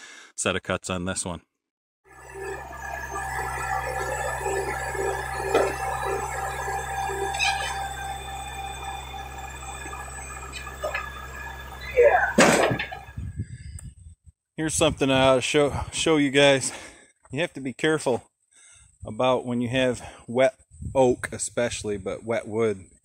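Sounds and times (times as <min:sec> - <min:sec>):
loud rising squeal: 0:02.1 - 0:13.3
tractor engine running: 0:02.1 - 0:13.3
steady whine: 0:02.1 - 0:13.5.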